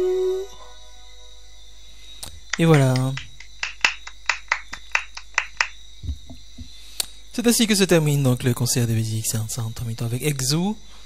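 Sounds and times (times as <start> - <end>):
faint high whine: 0.0 - 5.2, 5.9 - 11.0
hand snaps or claps: 2.2 - 5.8.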